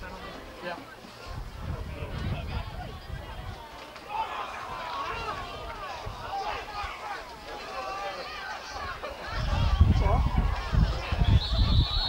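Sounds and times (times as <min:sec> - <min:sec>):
referee's whistle long note: 0:11.2 - 0:12.0.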